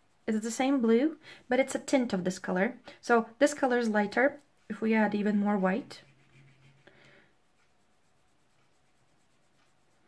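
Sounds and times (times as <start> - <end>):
pastel stick scratching paper: 5.0 - 10.0.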